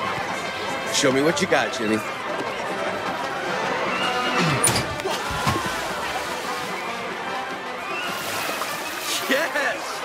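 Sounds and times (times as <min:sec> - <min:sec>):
background music: 0:00.0 - 0:10.0
crowd noise: 0:00.0 - 0:10.0
person dropping into water: 0:04.9 - 0:06.5.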